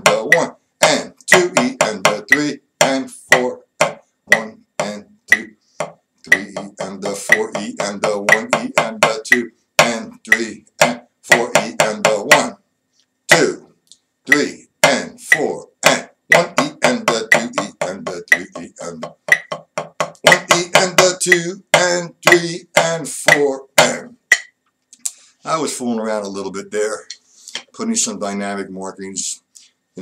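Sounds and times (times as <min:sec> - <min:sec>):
man counting aloud: 0:00.0 - 0:03.7, 0:04.3 - 0:05.6, 0:06.3 - 0:12.6, 0:13.3 - 0:19.6, 0:20.2 - 0:24.2
drumstick strokes: 0:00.0 - 0:12.6, 0:14.3 - 0:25.2.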